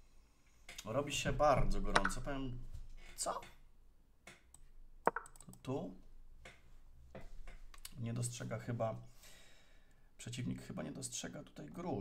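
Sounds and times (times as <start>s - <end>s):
soft breathing: 9.1s - 10.1s.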